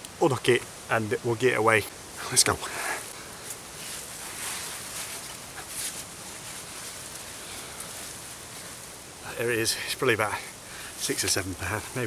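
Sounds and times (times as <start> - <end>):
outdoor background noise: 0.0 - 12.0
faint rustles: 2.1 - 12.0.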